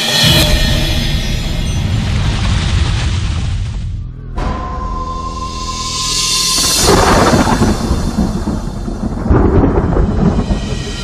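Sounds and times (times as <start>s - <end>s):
film music: 3.8s - 11.0s
thunder rumbling: 5.5s - 11.0s.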